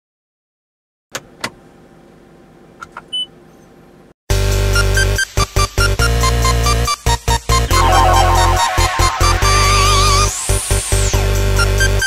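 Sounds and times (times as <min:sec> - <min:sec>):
low steady hum in car: 0:01.2 - 0:04.1
short high beep: 0:07.7 - 0:10.8.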